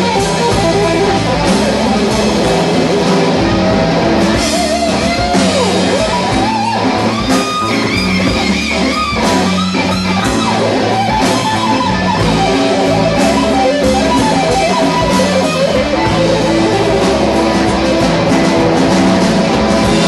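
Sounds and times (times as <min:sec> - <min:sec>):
blues-rock band playing: 0:00.0 - 0:20.0
electric guitar bending notes: 0:00.0 - 0:20.0.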